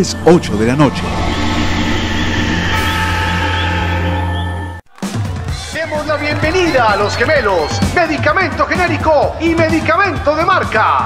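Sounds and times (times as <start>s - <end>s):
low sustained drone: 0.0s - 4.8s.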